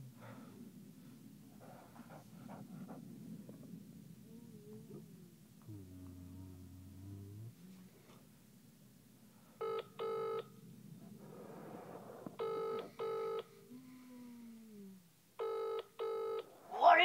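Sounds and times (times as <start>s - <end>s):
telephone ringback tone: 9.6s - 10.5s, 12.4s - 13.5s, 15.4s - 16.4s.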